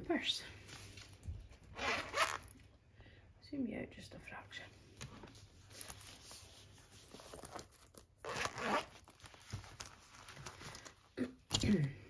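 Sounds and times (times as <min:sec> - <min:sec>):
purse zip pulled open: 0:01.7 - 0:02.5, 0:08.2 - 0:09.0.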